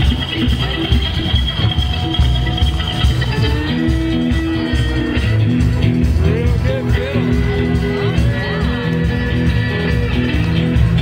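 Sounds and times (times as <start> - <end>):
live country band playing: 0.0 - 11.0.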